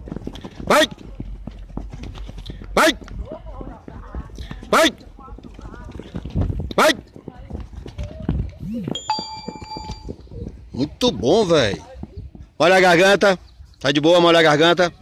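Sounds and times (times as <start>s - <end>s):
running footsteps on court: 0.0s - 14.3s.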